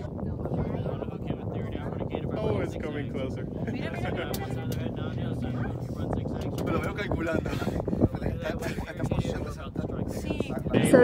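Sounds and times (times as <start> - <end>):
low steady hum: 0.0 - 11.0
people talking indistinctly: 0.0 - 11.0.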